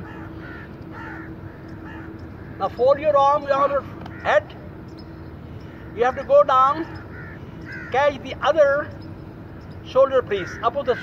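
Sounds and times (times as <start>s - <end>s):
crows cawing: 0.0s - 2.8s, 3.8s - 4.8s, 5.5s - 8.4s, 10.2s - 11.0s
steady low hum: 0.0s - 11.0s.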